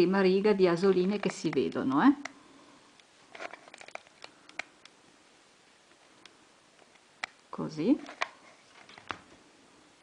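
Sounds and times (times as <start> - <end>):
rustling handling noise: 3.0 - 5.0, 7.8 - 9.5.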